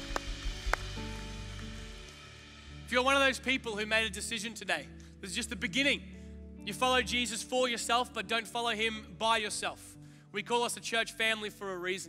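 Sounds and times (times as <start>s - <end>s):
sharp nearby claps: 0.0s - 2.2s
congregation applauding: 0.0s - 2.4s.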